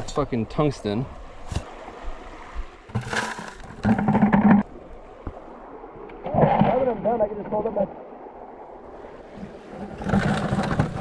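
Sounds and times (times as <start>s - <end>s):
water sloshing and splashing: 0.8s - 11.0s.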